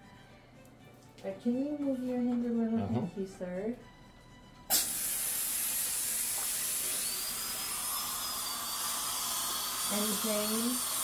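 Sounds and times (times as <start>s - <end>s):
dental drill and suction hissing: 4.7s - 11.0s
thin high whine: 5.5s - 11.0s.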